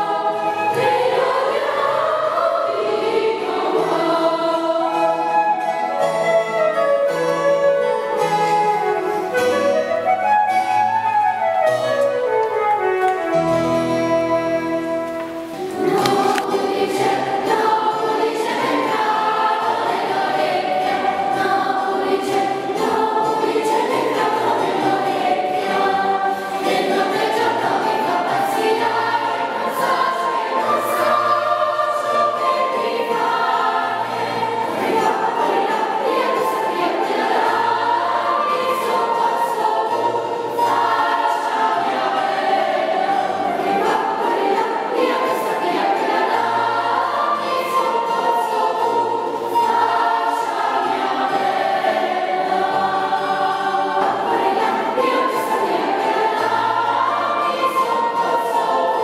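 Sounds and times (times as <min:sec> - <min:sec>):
children's choir singing: 0:00.0 - 0:59.0
flute phrase: 0:04.8 - 0:15.4.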